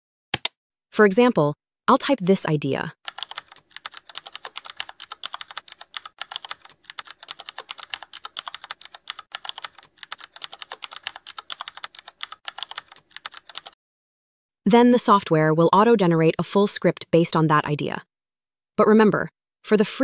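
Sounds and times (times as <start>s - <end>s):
rapid typing on keyboard: 3.0s - 13.8s.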